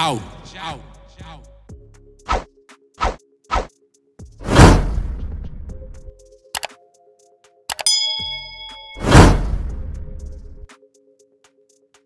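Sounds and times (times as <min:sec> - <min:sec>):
quick clicks: 0:06.6 - 0:06.8
bell-like ding: 0:07.7 - 0:09.6.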